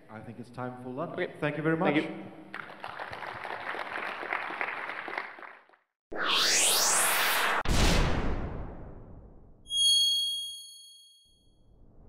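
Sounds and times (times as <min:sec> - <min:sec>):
whoosh: 0:06.1 - 0:09.6
bright high chime: 0:09.7 - 0:11.4.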